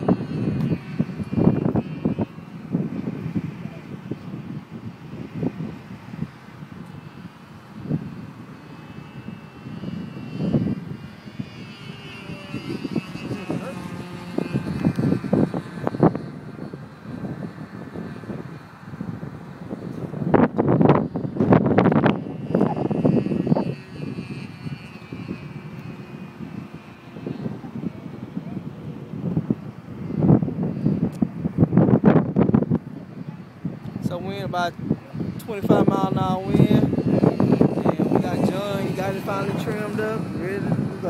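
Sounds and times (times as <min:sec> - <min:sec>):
model airplane engine whine: 0:00.0 - 0:41.0
wind buffeting microphone: 0:00.0 - 0:41.0.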